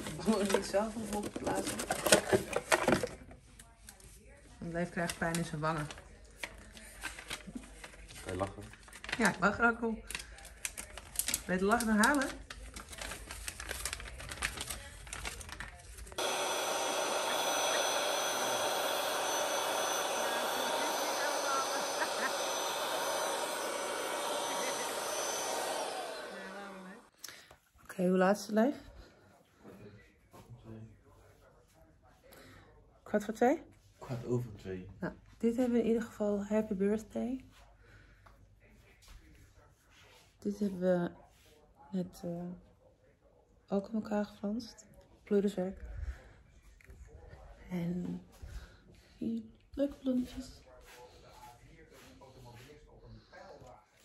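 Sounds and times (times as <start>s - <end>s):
electric balloon pump running: 16.2s - 27.1s.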